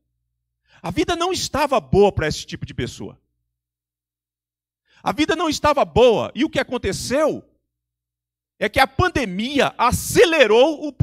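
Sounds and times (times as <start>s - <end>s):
man speaking: 0.8s - 3.2s, 5.0s - 7.5s, 8.6s - 11.0s.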